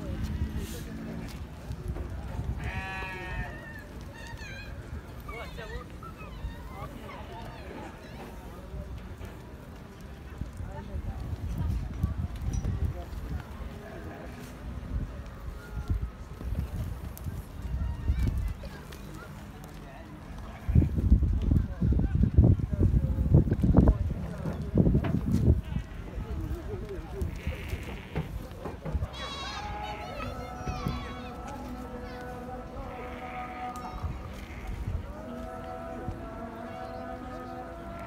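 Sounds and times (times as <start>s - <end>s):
sheep bleating: 2.6s - 3.8s, 27.2s - 28.3s, 29.1s - 38.0s.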